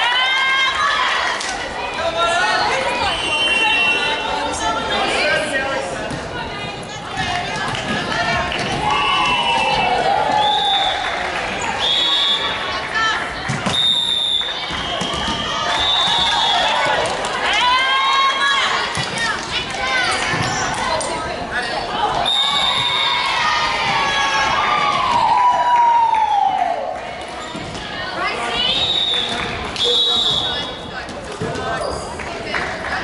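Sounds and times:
sneakers squeaking on hardwood floor: 31.4s - 32.2s.

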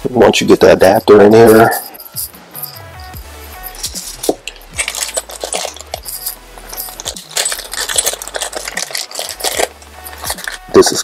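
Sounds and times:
electronic music with bass: 0.0s - 11.0s
metal gun parts clinking: 0.6s - 11.0s
plastic bag crinkling: 4.0s - 11.0s.

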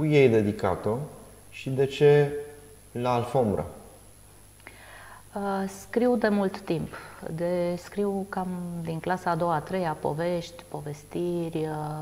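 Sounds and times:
woman speaking: 5.3s - 12.0s.

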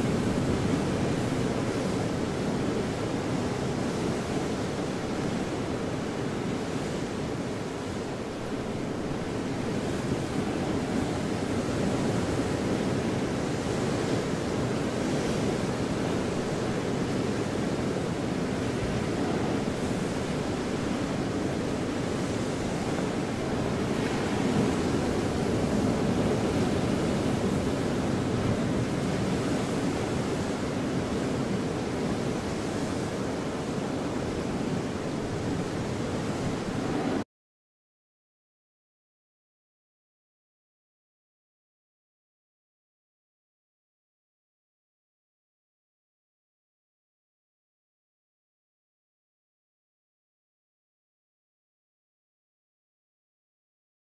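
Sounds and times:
steady rushing noise: 0.0s - 37.2s.

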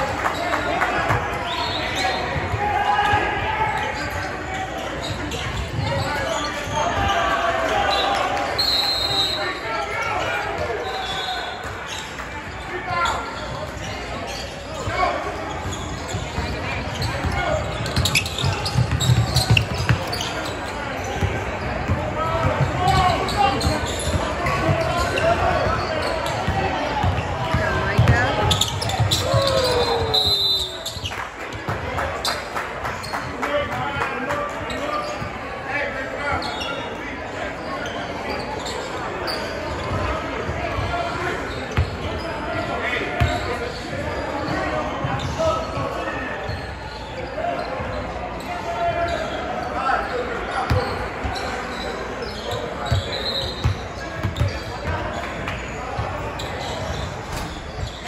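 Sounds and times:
sneakers squeaking: 0.1s - 58.0s
basketball bouncing: 26.4s - 29.4s.

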